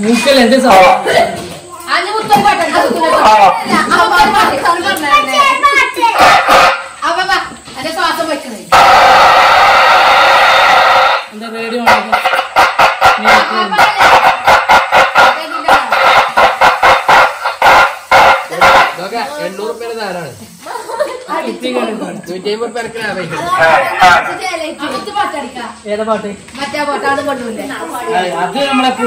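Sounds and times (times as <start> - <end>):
loud steady megaphone hiss: 0.0 - 29.0
quick rapid bursts: 6.0 - 7.1, 8.7 - 19.8
man's voice through megaphone: 17.7 - 19.5, 23.6 - 24.3.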